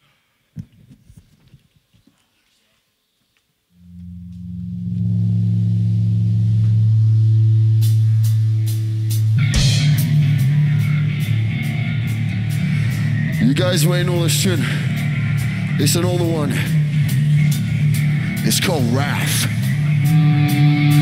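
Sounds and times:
held low guitar and bass note: 3.8s - 21.0s
cymbal strikes: 4.2s - 21.0s
heavy metal band playing: 4.4s - 21.0s.

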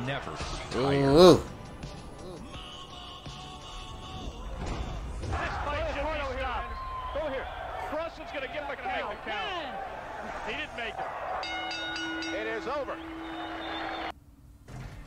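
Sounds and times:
voices calling out: 6.8s - 14.1s
steady held tone: 11.4s - 14.1s.

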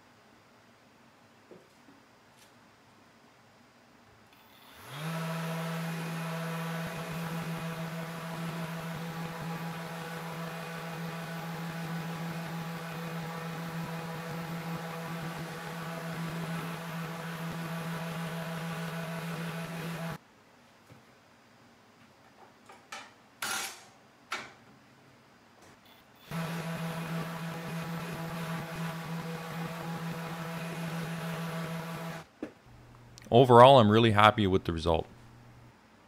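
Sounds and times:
orbital sander humming: 4.8s - 20.2s, 26.3s - 32.9s.

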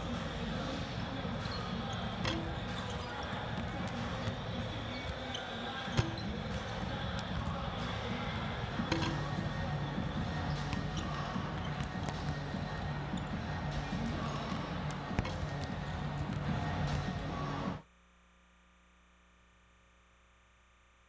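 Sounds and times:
basketballs bouncing on hardwood: 0.0s - 17.2s
arena crowd noise: 0.0s - 17.8s
music: 0.0s - 17.8s.

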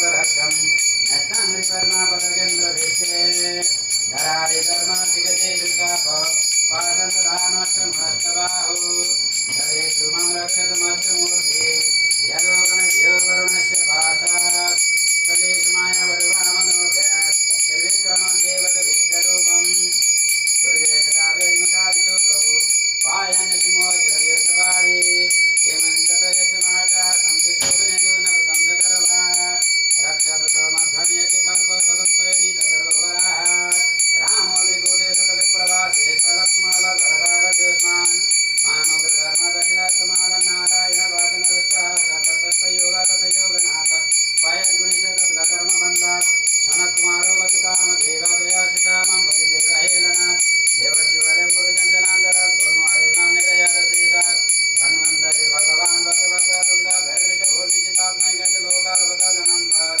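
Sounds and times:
devotional chant singing: 0.0s - 60.0s
hand bell ringing: 0.0s - 60.0s.

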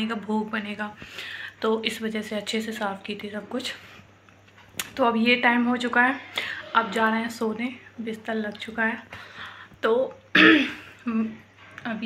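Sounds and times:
woman coughing: 10.3s - 11.2s.

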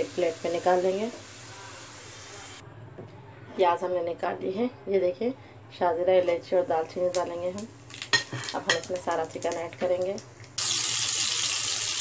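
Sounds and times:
onions sizzling in hot oil: 0.0s - 2.6s, 6.6s - 12.0s.

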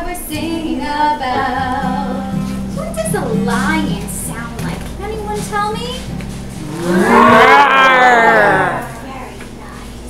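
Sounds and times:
ringing acoustic guitar: 0.0s - 9.3s
people imitating a lion's roar: 6.6s - 9.1s
quiet talking: 6.6s - 10.0s.

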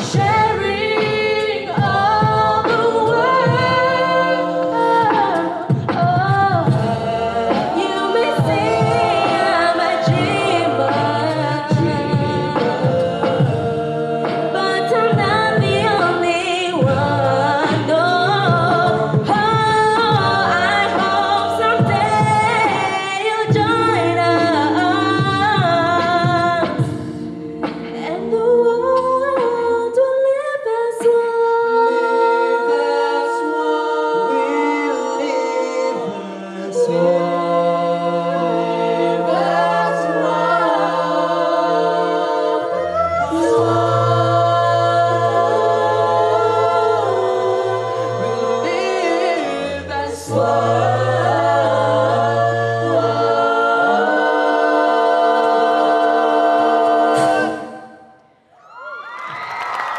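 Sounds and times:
a cappella group singing: 0.0s - 58.8s.

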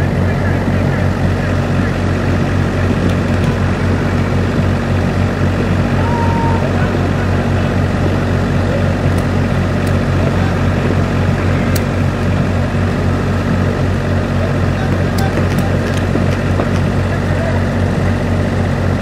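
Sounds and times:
low mechanical hum: 0.0s - 19.0s.

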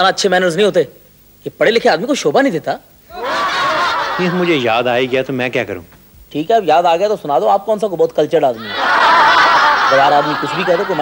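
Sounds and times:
audience laughter: 3.1s - 5.3s, 8.6s - 11.0s.

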